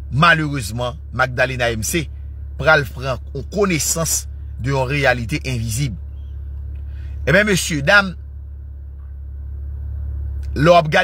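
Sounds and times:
steady low hum: 0:00.0 - 0:11.0
man speaking: 0:00.1 - 0:06.0, 0:07.2 - 0:08.2, 0:10.6 - 0:11.0.

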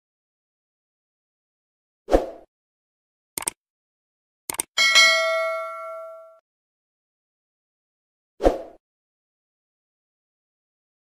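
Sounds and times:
bell-like ding: 0:04.8 - 0:06.4.

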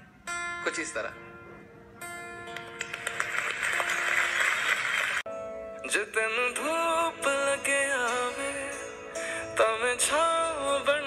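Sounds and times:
acoustic guitar notes ringing: 0:00.0 - 0:03.0, 0:05.3 - 0:11.0
audience applauding: 0:02.5 - 0:05.2.

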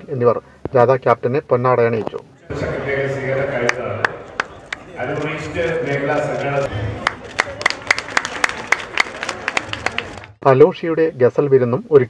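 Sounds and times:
faint crowd noise: 0:00.0 - 0:11.9
hand clapping in steady rhythm: 0:03.7 - 0:04.9, 0:07.0 - 0:10.4.

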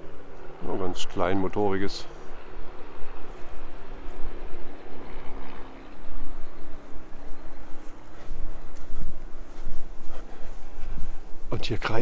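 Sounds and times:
light aircraft engine drone: 0:00.0 - 0:12.0
wind rumbling on microphone: 0:00.0 - 0:12.0.

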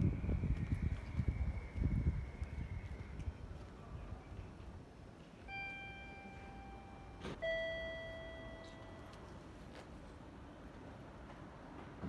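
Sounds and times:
two-note electronic chime: 0:05.5 - 0:09.3.

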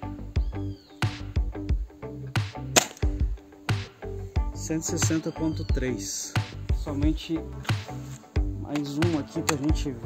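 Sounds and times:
background music with steady beat: 0:00.0 - 0:10.0
air rifle firing: 0:02.7 - 0:03.2.

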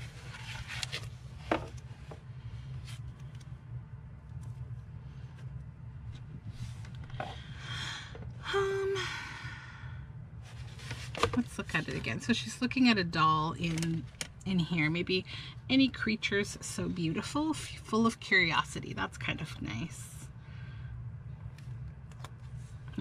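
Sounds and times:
book and paper handling: 0:00.0 - 0:03.5, 0:10.4 - 0:12.1, 0:13.6 - 0:14.3
steady low hum: 0:00.0 - 0:23.0
person sighing: 0:07.2 - 0:09.9.

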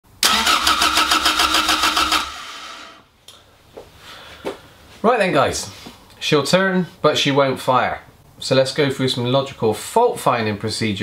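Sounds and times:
car engine cranking on starter: 0:00.2 - 0:03.0.

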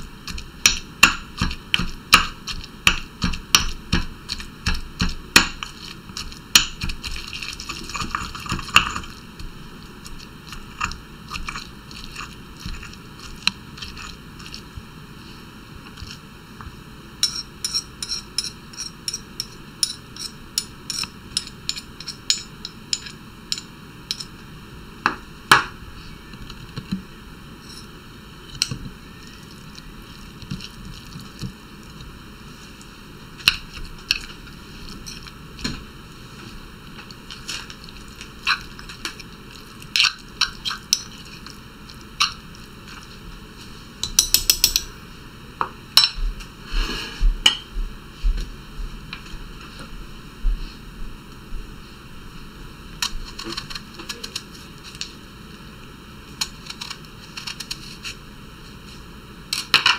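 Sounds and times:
pestle pounding in mortar: 0:00.3 - 0:09.2
metal spoon scraping mortar: 0:17.2 - 0:22.4.

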